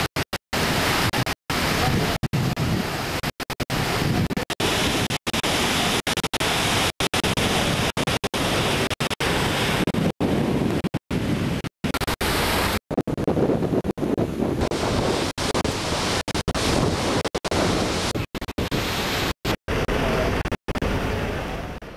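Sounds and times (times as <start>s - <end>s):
sea: 0.0s - 21.9s
wind on microphone: 0.0s - 21.9s.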